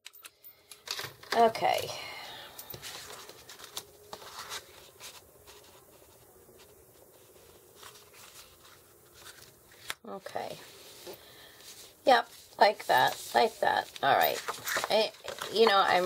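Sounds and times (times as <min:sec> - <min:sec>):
paper rustling and sliding: 0:02.8 - 0:10.0, 0:10.6 - 0:16.0.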